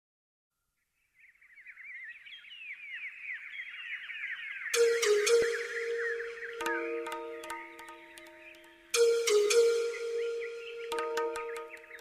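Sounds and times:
birds chirping: 0.8 - 12.0.

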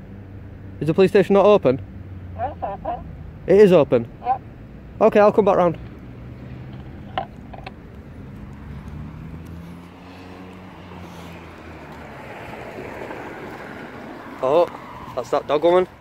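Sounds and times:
car tyre noise passing: 0.0 - 16.0
vehicle engine humming: 0.0 - 16.0.

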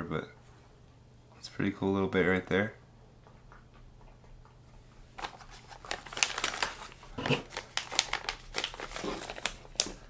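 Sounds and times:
plastic bag crinkling: 5.2 - 10.0.

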